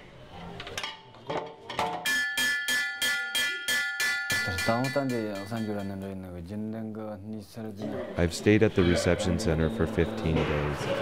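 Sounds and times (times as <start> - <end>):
metal bar struck like a gong: 2.1 - 6.1.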